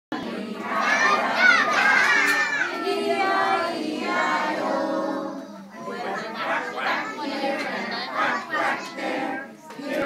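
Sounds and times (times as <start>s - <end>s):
children chattering: 0.2s - 3.6s, 4.6s - 10.0s.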